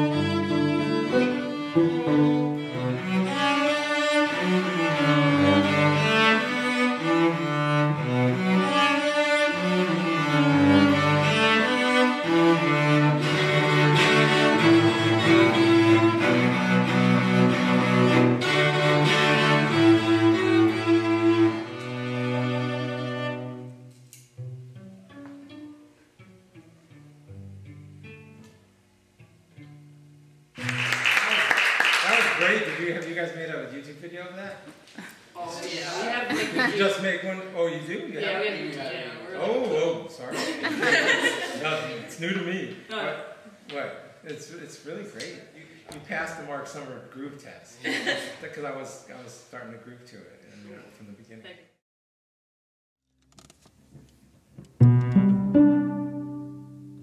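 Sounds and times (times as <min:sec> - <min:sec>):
cellos playing bowed duet: 0:00.0 - 0:28.6, 0:54.6 - 0:57.0.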